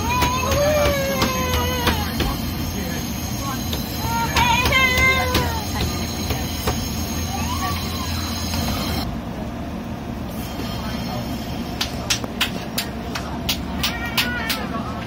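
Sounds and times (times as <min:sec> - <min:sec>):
people's voices: 0:00.0 - 0:09.1, 0:10.6 - 0:15.0
train rumble from inside carriage: 0:00.0 - 0:15.0.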